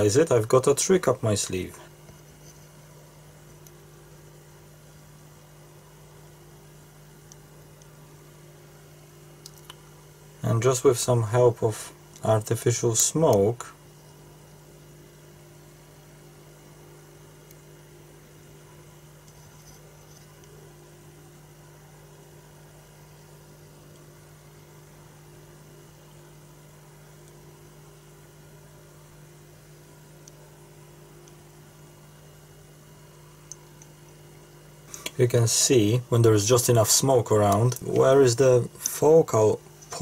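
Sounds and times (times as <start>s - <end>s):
faint electrical hum: 0.0s - 40.0s
low hiss: 0.0s - 40.0s
small click: 9.4s - 9.8s.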